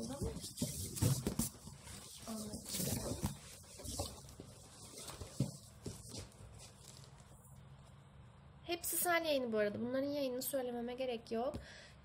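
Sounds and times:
cardboard and books rustling: 0:00.0 - 0:07.5.

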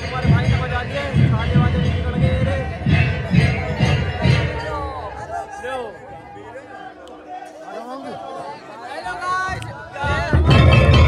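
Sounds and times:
dhol drums beaten with sticks: 0:00.0 - 0:05.1, 0:10.1 - 0:11.0
voices: 0:00.0 - 0:11.0.

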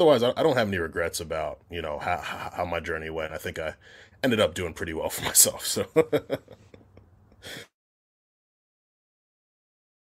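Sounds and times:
man chuckling: 0:02.0 - 0:02.7, 0:05.2 - 0:07.7
short breath: 0:03.8 - 0:04.2, 0:07.4 - 0:07.8.

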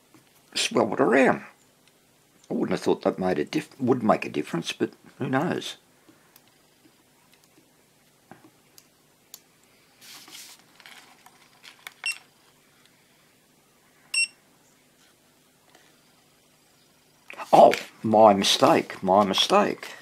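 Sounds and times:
rustling and small clicks: 0:06.3 - 0:13.0
electronic tester beeps: 0:14.1 - 0:14.4.

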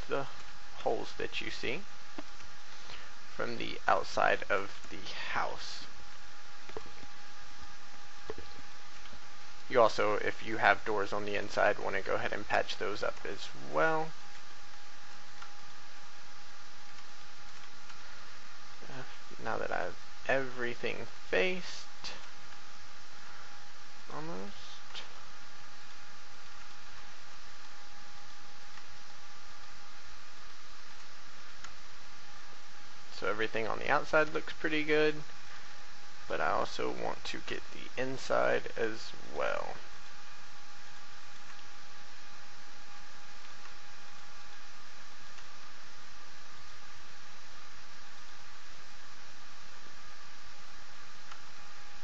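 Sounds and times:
faint constant tone: 0:00.0 - 0:52.0
recording hiss: 0:00.0 - 0:52.0.

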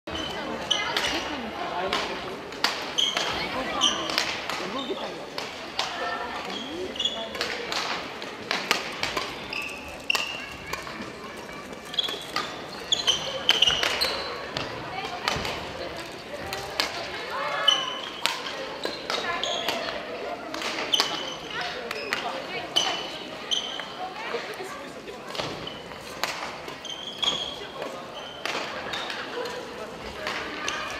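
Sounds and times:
voices of people: 0:00.1 - 0:30.9
rackets hitting shuttlecocks: 0:00.9 - 0:06.6, 0:07.3 - 0:23.1, 0:25.3 - 0:30.9
shoes squeaking on wooden floor: 0:06.4 - 0:07.4, 0:09.4 - 0:14.6, 0:26.7 - 0:29.0.

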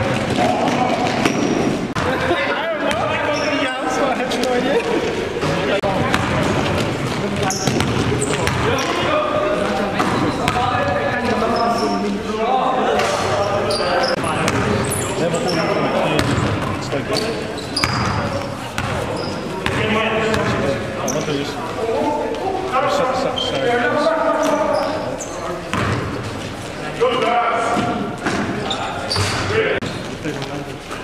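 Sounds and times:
basketball bouncing on court: 0:00.0 - 0:02.2, 0:05.9 - 0:09.0, 0:14.4 - 0:15.0, 0:16.1 - 0:21.2, 0:25.7 - 0:26.2
sneakers squeaking: 0:00.0 - 0:12.3, 0:12.9 - 0:31.0.

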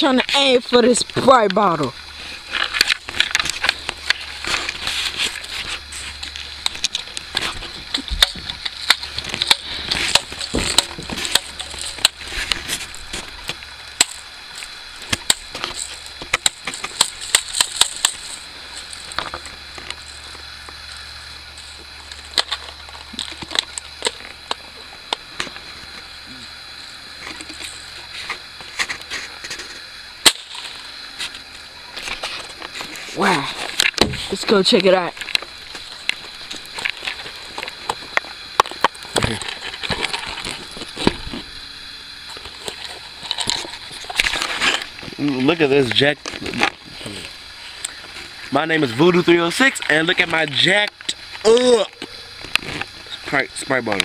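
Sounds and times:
bb gun cracks: 0:30.2 - 0:30.6.

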